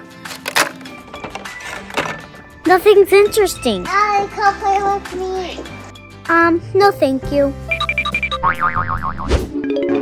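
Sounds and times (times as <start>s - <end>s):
children's background music: 0.0s - 8.7s.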